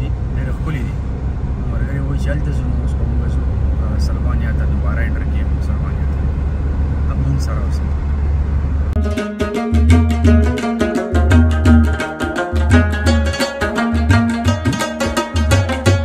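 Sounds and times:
car driving rumble from inside: 0:00.0 - 0:09.0.

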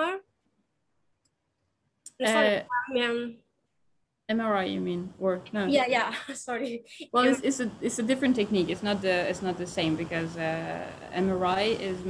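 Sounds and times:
person asking a question: 0:02.1 - 0:03.4, 0:04.7 - 0:10.9.

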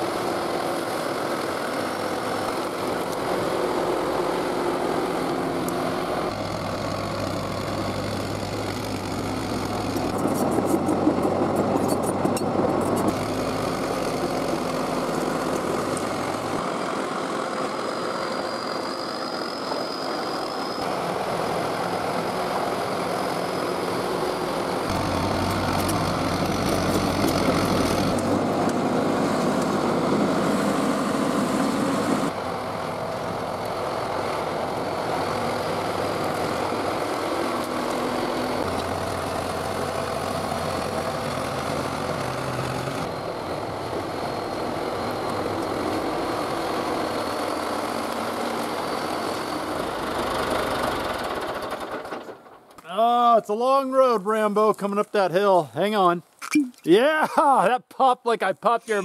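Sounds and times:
bulldozer pushing rock and earth: 0:00.0 - 0:32.4, 0:33.0 - 0:52.7
bulldozer diesel engine running: 0:00.0 - 0:52.7.

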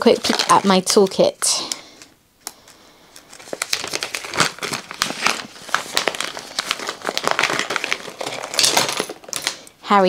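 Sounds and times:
packaging crinkling and rustling: 0:00.0 - 0:09.8.

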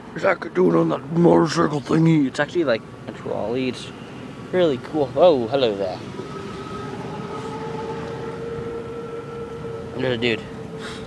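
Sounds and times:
wheels rumbling on pavement: 0:00.0 - 0:11.0
electric motor whine: 0:05.6 - 0:11.0.

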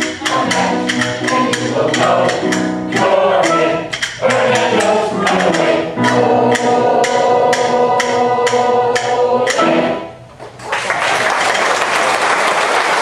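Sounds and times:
choir singing held chords: 0:00.0 - 0:10.3.

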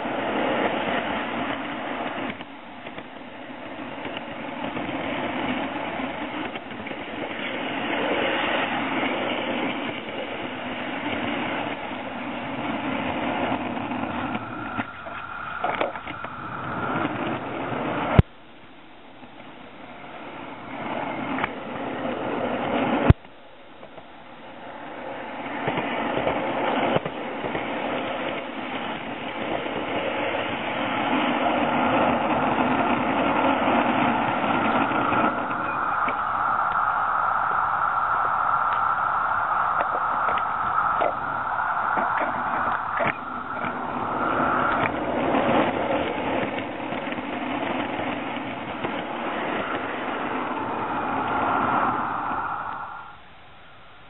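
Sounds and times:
model train wheels rolling on rail: 0:00.0 - 0:54.0
faint clicks: 0:38.1 - 0:45.0.

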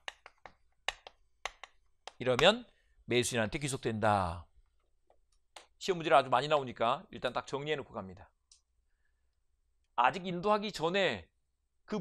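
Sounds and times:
chalk tapping on blackboard: 0:00.0 - 0:02.6.

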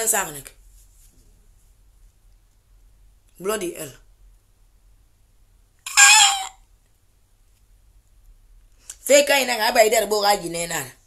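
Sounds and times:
short high-pitched call: 0:05.9 - 0:06.6.

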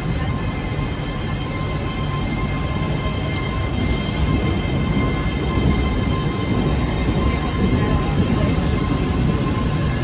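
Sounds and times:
train wheels rumbling on rails: 0:00.0 - 0:10.0.

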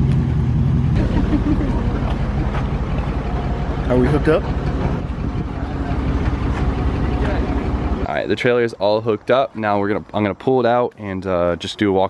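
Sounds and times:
truck engine running: 0:00.0 - 0:10.2.

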